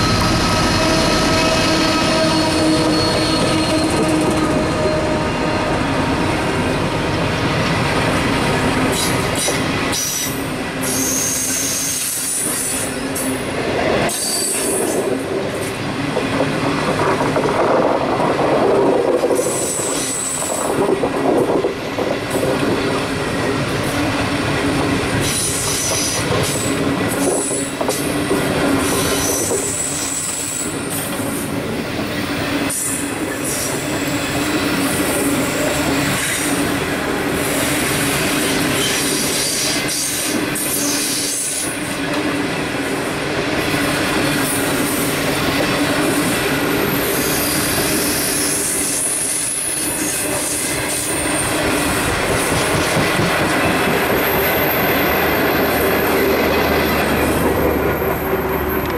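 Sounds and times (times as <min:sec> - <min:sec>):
high-pitched wheel squeals: 0:00.0 - 0:05.9, 0:09.0 - 0:13.0
train rolling past: 0:00.0 - 0:58.9.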